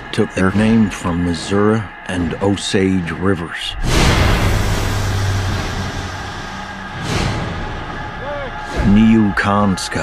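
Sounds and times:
steady hum: 0:00.0 - 0:10.0
low rumble: 0:03.7 - 0:10.0.

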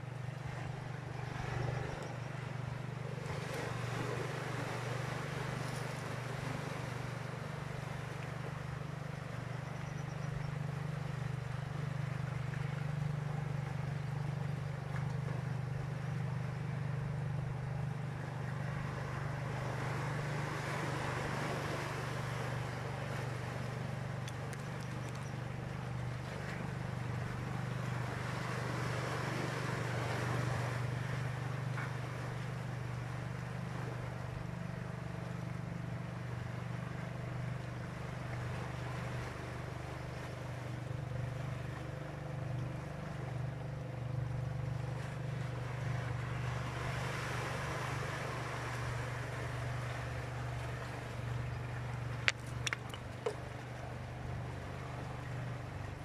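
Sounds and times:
low motor hum: 0:00.0 - 0:56.0.

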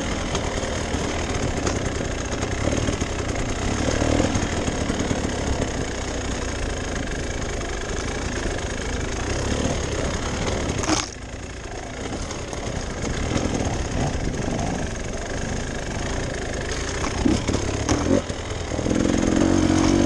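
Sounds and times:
dirt bike engine at low revs: 0:00.0 - 0:20.0.

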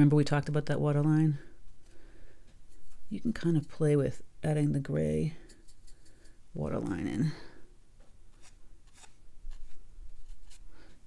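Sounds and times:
brush rubbing on paper: 0:05.4 - 0:06.4.

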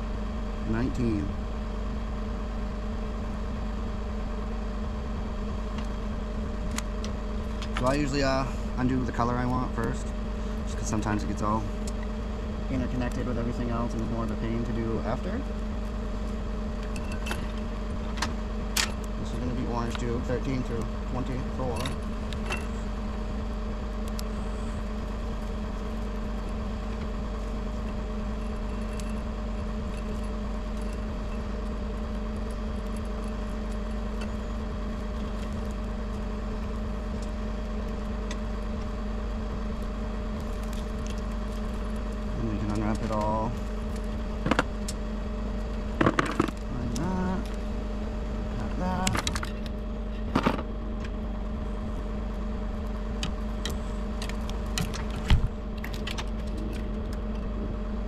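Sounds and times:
truck engine idling: 0:00.0 - 0:58.0
sharp clicks and rattles: 0:06.6 - 0:12.1, 0:12.7 - 0:47.8, 0:48.6 - 0:51.2, 0:51.9 - 0:57.6.

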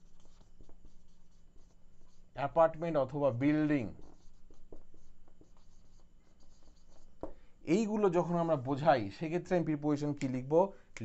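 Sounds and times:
marker pen scratching on whiteboard: 0:00.0 - 0:08.9.

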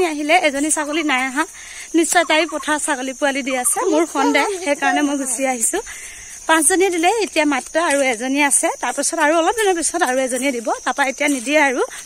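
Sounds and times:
steady high hiss: 0:00.0 - 0:12.0
woman talking: 0:00.0 - 0:12.0.

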